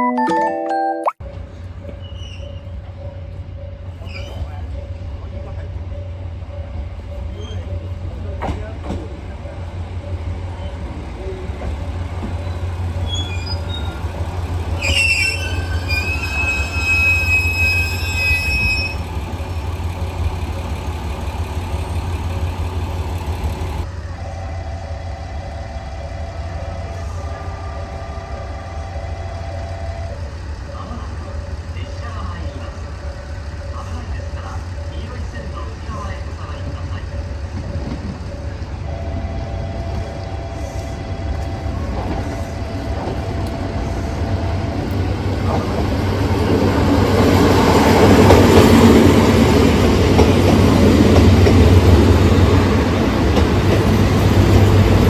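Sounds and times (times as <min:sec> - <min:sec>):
train brakes squealing: 0:01.3 - 0:08.6, 0:12.3 - 0:19.7
diesel engine rumbling: 0:03.0 - 0:55.0.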